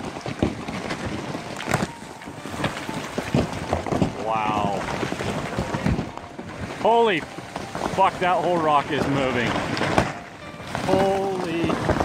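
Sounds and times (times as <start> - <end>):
landslide rushing: 0.0 - 12.0
rocks cracking and knocking: 0.0 - 12.0.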